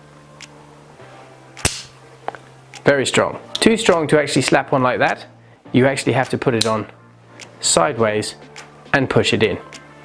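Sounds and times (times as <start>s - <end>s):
magnet snapping onto metal plate: 1.6s - 2.0s.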